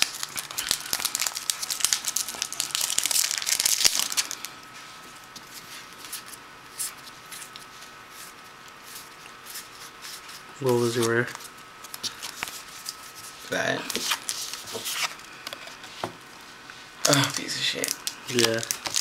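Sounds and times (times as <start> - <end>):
foil wrapper crinkling and tearing: 0.0 - 4.5, 10.8 - 13.0, 13.9 - 15.2, 17.0 - 19.0
cards being handled: 6.0 - 15.2, 17.1 - 19.0.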